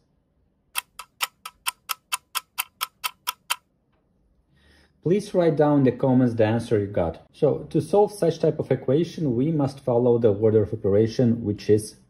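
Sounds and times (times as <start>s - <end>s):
fast clock ticking: 0.8s - 3.6s.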